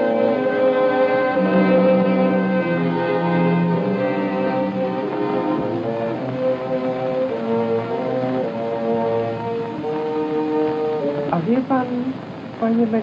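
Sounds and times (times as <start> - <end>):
bowed strings sustained chords: 0.0 - 13.0.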